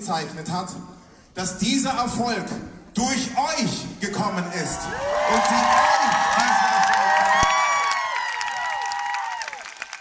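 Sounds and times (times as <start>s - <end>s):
crowd cheering: 4.4s - 10.0s
high-pitched screams and whoops: 4.6s - 9.8s.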